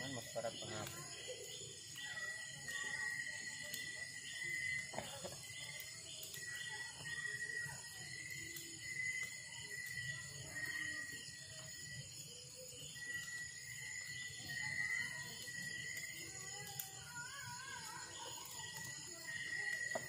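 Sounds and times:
night insects trilling: 0:00.0 - 0:20.0
wood fire crackling: 0:00.0 - 0:20.0.

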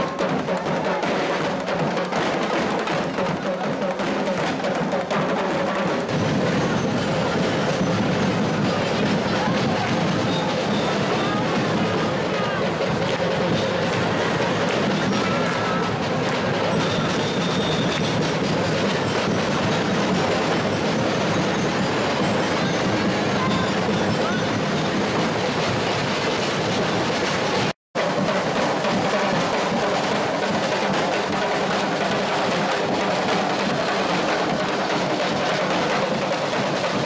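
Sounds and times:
marching snare and tenor drums: 0:00.0 - 0:37.0.

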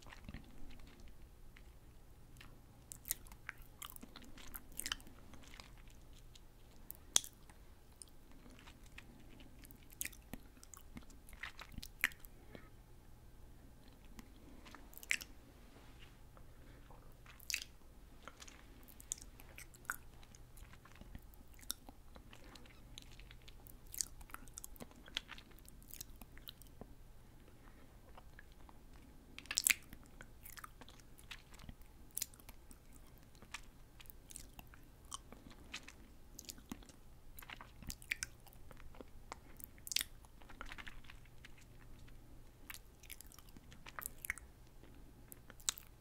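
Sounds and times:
candy chewing with lip smacks: 0:00.0 - 0:12.7, 0:13.7 - 0:15.4, 0:16.4 - 0:46.0.

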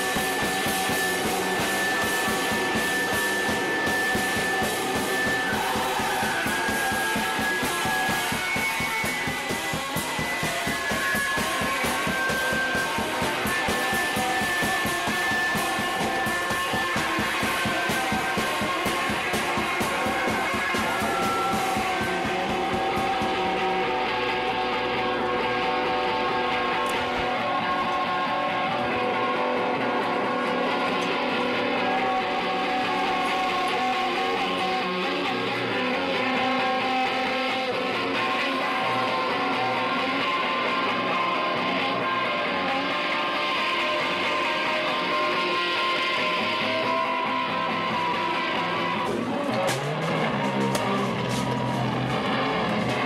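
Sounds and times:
distorted electric guitar: 0:00.0 - 0:53.0
punk band playing: 0:00.0 - 0:53.0.

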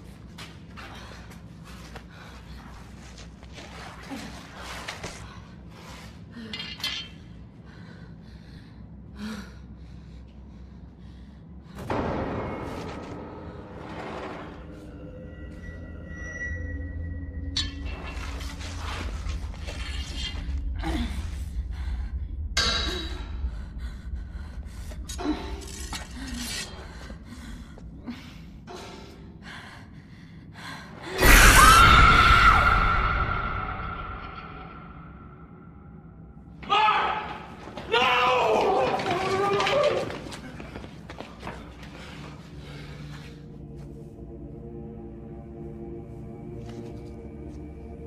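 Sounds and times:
low hum: 0:00.0 - 0:36.6
woman breathing heavily: 0:00.2 - 0:11.9, 0:20.4 - 0:31.2, 0:40.4 - 0:43.9
steady low rumble: 0:07.1 - 0:31.2.

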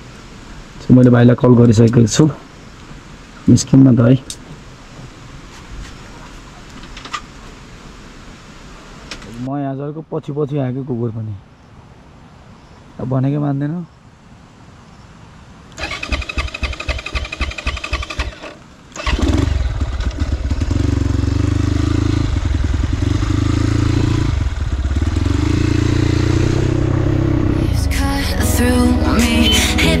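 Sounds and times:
dirt bike engine cranking: 0:15.8 - 0:21.2
dirt bike engine running loudly: 0:19.2 - 0:27.6.

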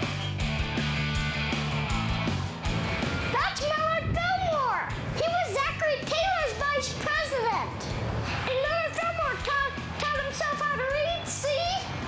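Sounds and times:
girl exclaiming: 0:03.3 - 0:07.8, 0:08.5 - 0:11.9.

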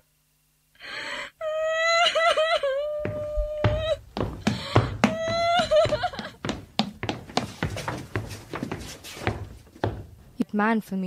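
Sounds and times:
child wailing: 0:01.4 - 0:04.0, 0:05.0 - 0:06.3.

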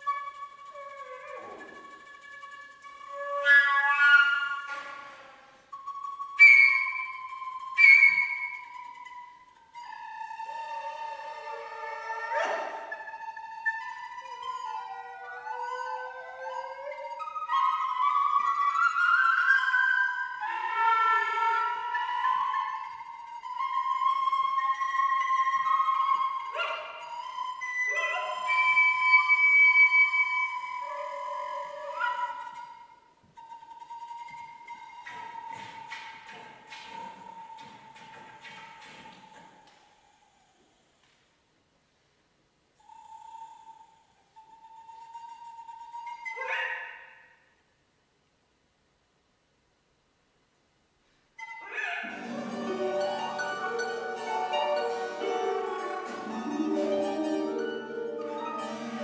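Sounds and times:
chamber music ensemble: 0:00.0 - 0:39.8, 0:51.4 - 0:59.0.

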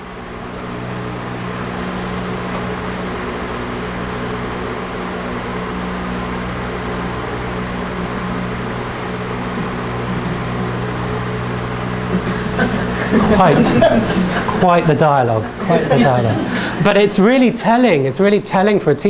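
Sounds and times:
low machine hum: 0:00.0 - 0:19.0.

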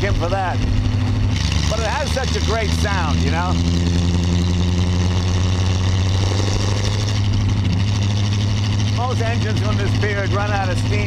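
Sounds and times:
car engine running steadily: 0:00.0 - 0:11.0.

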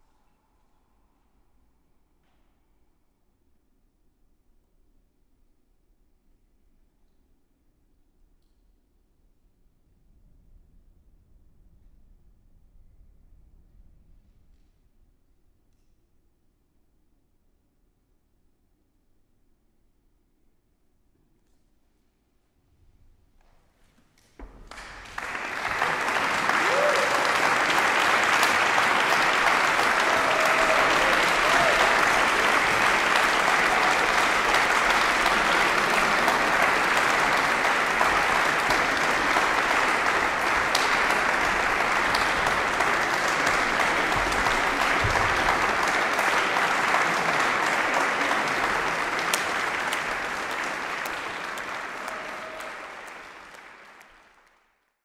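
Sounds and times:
audience applauding: 0:24.4 - 0:54.9.

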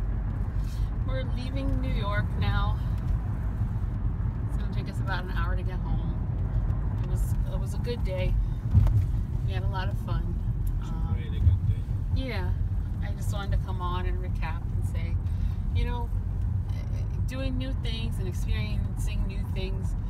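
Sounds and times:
car cabin road rumble: 0:00.0 - 0:20.0
low bumps: 0:00.0 - 0:20.0.

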